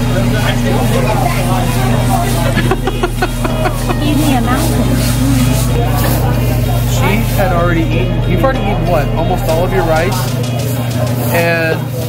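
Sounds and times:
people talking and laughing: 0.0s - 12.0s
steady low hum: 0.0s - 12.0s.

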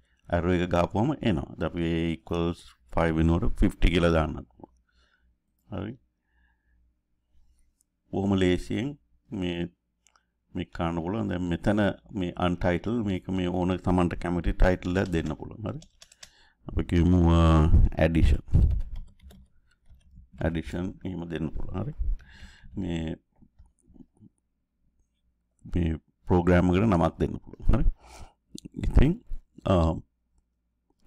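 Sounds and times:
person speaking: 0.3s - 4.7s, 8.1s - 9.8s, 10.5s - 24.4s, 25.6s - 28.0s, 28.6s - 30.2s
computer keyboard typing: 14.7s - 16.4s, 18.5s - 20.4s.

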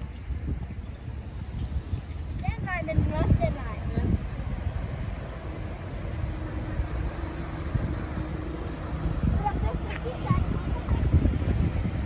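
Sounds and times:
boat engine humming: 0.0s - 12.0s
wind buffeting microphone: 0.0s - 12.0s.

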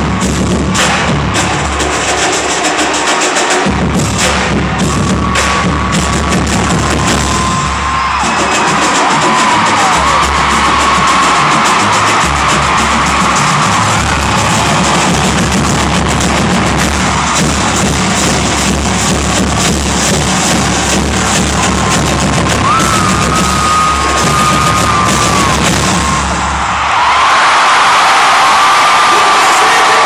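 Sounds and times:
tenor drums playing: 0.0s - 26.6s
crowd cheering: 0.0s - 30.0s
deep pulsing bass drums: 3.7s - 26.5s.

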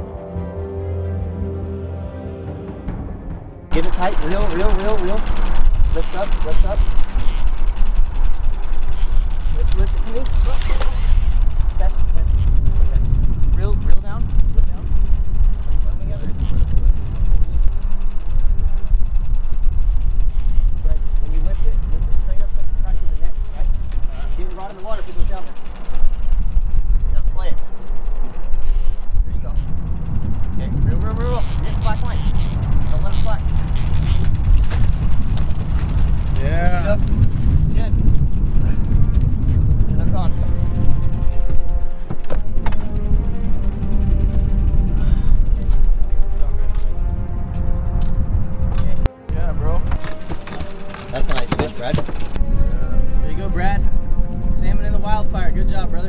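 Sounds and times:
low rumble: 0.0s - 56.0s.

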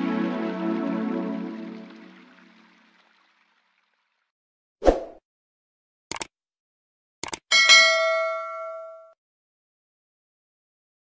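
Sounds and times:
mouse clicks: 6.1s - 6.3s, 7.2s - 7.4s
notification bell ding: 7.5s - 9.2s.

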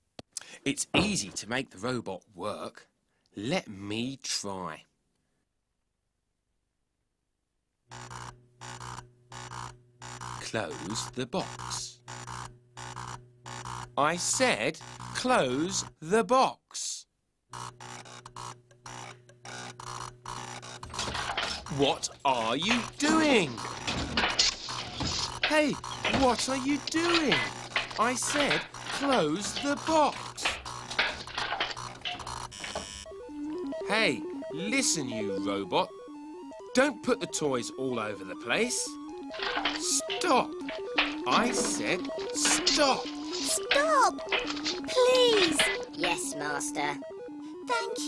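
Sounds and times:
electronic buzzing pulses: 7.9s - 14.0s, 17.5s - 33.8s
steady electric hum: 7.9s - 16.1s, 17.5s - 36.6s, 38.6s - 46.3s.

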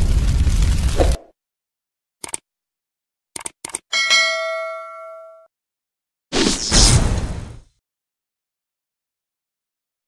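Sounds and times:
quick clicks: 2.2s - 2.4s, 3.4s - 3.8s
bell ding: 3.9s - 5.5s.

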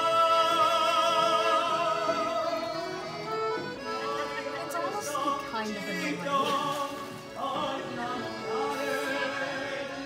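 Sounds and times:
accordion playing chords: 0.0s - 10.0s.

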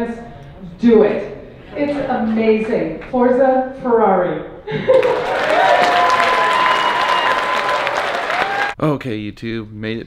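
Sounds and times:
audience applauding: 4.9s - 8.8s
person cheering: 4.9s - 8.8s.

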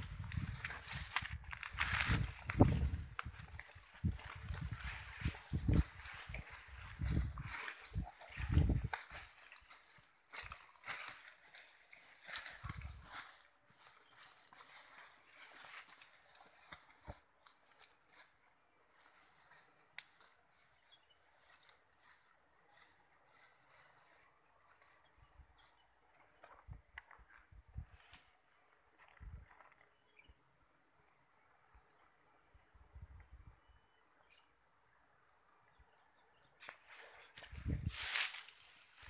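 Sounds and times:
footsteps rustling through grass: 0.0s - 29.7s, 36.6s - 39.0s.

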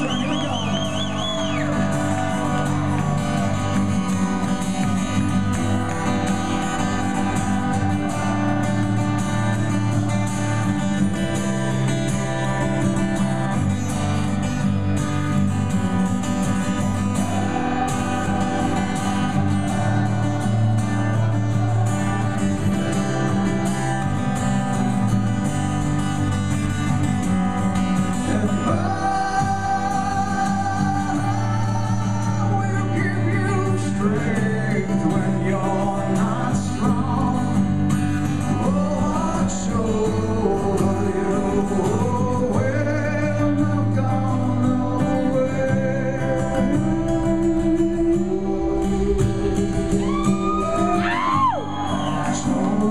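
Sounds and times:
acoustic guitar playing: 0.0s - 52.9s
person singing: 28.2s - 37.6s, 38.5s - 52.9s.

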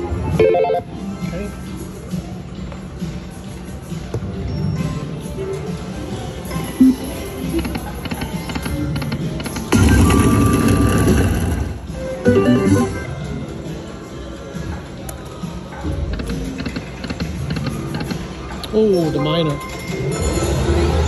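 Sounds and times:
slot machine electronic music: 0.0s - 1.0s, 6.6s - 13.1s.

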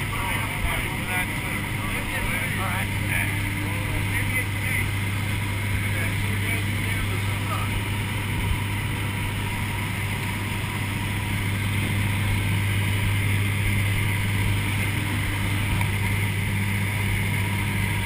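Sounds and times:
aircraft engine drone in cabin: 0.0s - 18.0s.

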